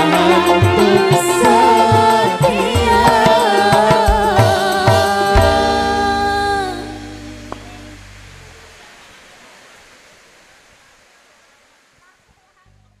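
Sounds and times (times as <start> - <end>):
faint hiss: 0.0 - 13.0
band final chord ringing: 5.4 - 8.9.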